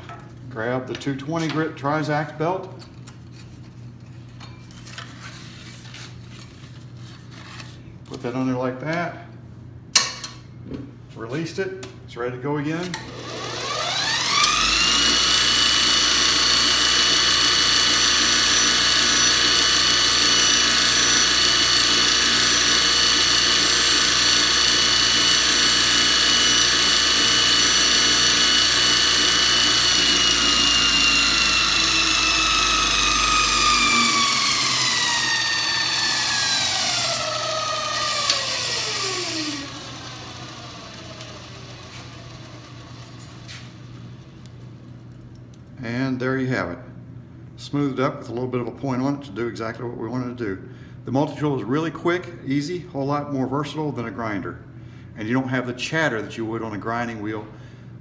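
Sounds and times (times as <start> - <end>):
belt grinder motor whining: 13.0 - 43.8
grinder motor winding down: 13.0 - 44.0.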